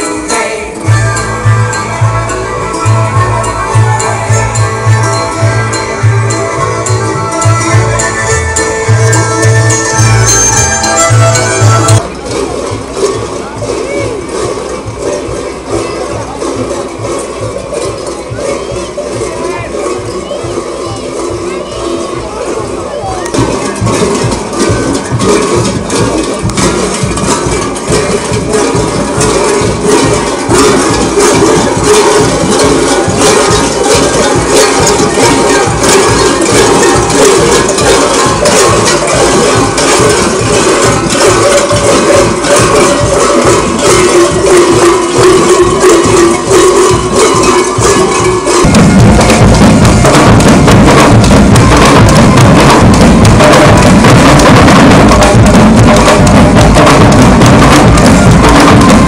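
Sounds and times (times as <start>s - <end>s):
parade band music: 0.0s - 59.0s
heavy bass drum: 0.8s - 59.0s.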